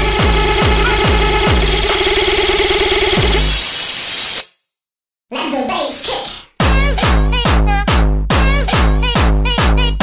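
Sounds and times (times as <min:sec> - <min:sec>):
hard kick drum: 0:00.0 - 0:02.0, 0:06.6 - 0:09.8
buzzing synth: 0:00.0 - 0:04.4.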